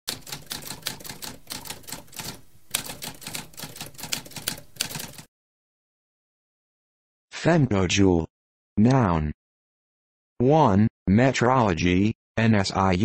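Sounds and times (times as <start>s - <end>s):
typewriter keystrokes clacking: 0.1s - 5.3s.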